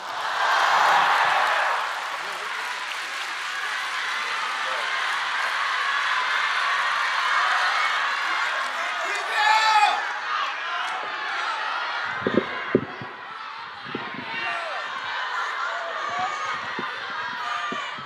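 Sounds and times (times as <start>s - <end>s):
large audience applauding: 0.0s - 11.7s.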